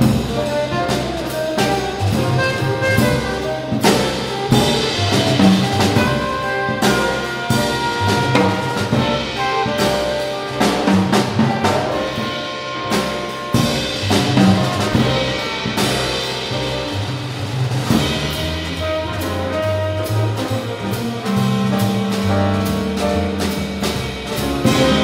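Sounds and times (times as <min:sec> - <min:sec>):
trumpet: 0:00.0 - 0:17.1, 0:17.8 - 0:25.0
drum kit with cymbals: 0:00.0 - 0:25.0
upright bass: 0:00.0 - 0:25.0
saxophone: 0:00.3 - 0:16.2.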